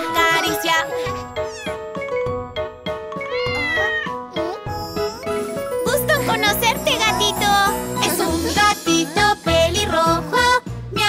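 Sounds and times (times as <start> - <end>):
light instrumental music: 0.0 - 11.0
kitten meowing: 1.4 - 1.8, 3.2 - 4.2.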